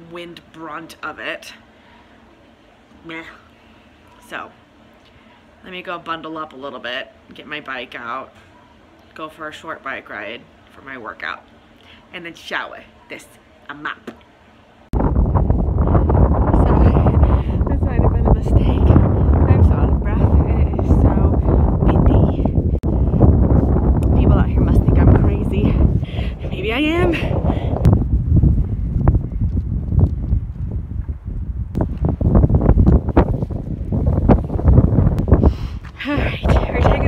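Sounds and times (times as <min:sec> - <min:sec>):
wind buffeting microphone: 0:14.9 - 0:37.0.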